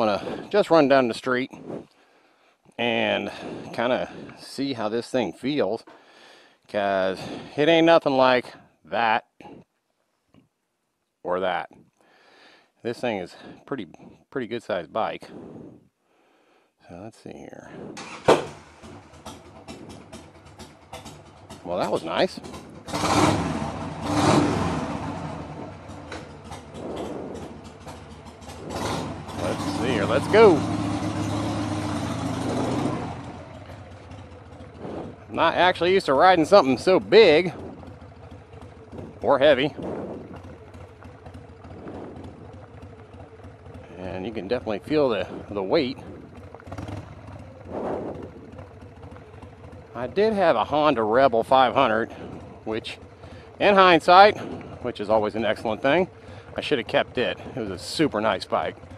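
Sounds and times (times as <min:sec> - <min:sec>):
motorcycle engine idling: 0:00.0 - 0:01.5, 0:02.8 - 0:08.8, 0:17.6 - 0:58.9
rush of noise: 0:24.1 - 0:30.5, 0:34.7 - 0:41.0, 0:41.6 - 0:42.7, 0:45.3 - 0:48.7.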